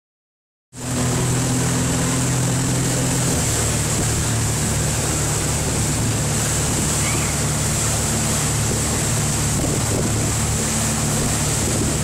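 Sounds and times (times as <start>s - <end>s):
water rushing from wake: 0.7s - 12.0s
motorboat engine running: 0.8s - 12.0s
wind on microphone: 0.8s - 12.0s.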